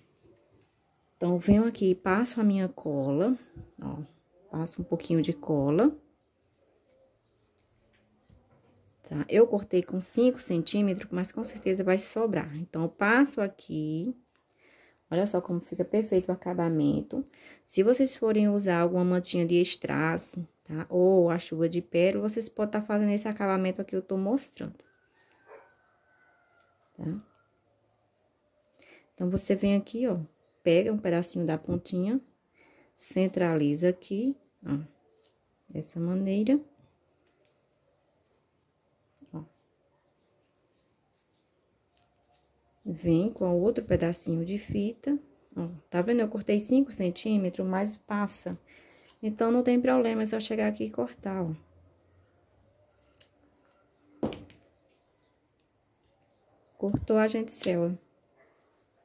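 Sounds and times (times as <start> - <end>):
scissors cutting ribbon: 57.4 - 57.9.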